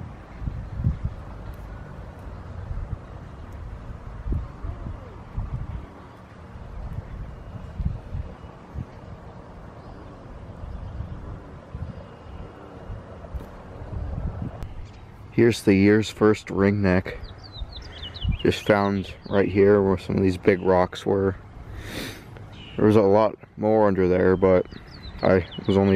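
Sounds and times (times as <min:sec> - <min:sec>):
wind buffeting microphone: 0:00.0 - 0:16.3, 0:17.1 - 0:20.6.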